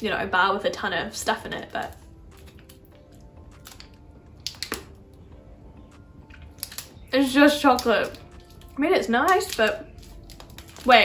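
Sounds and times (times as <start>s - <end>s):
faint background music: 0.0s - 11.0s
chewing chocolate: 2.3s - 4.9s, 5.9s - 11.0s.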